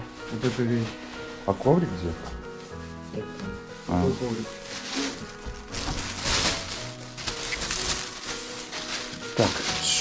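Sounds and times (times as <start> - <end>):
background music: 0.0 - 10.0
plastic bag rustling: 0.0 - 10.0.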